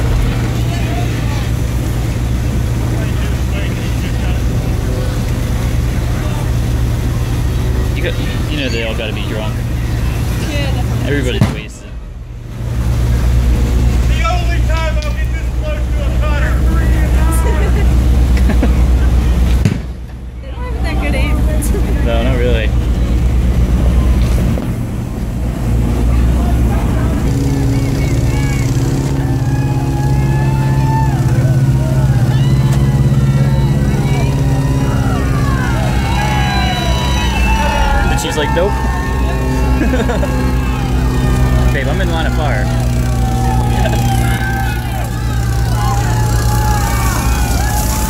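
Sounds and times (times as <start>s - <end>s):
boat engine running: 0.0s - 48.0s
distant shouting and voices: 0.0s - 48.0s.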